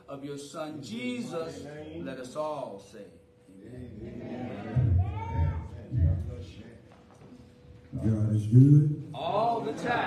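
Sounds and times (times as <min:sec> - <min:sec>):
congregation murmuring: 0:03.5 - 0:10.0.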